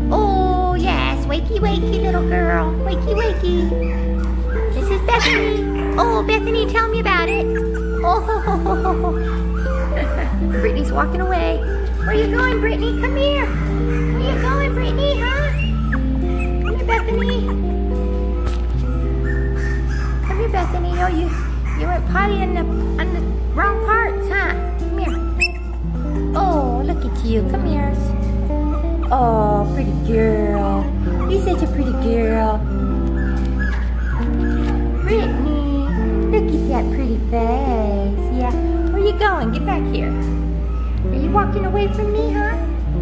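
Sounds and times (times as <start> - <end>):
background music: 0.0 - 43.0
puppies whimpering and yipping: 1.9 - 23.6, 24.6 - 29.4, 30.7 - 36.9, 38.5 - 42.0.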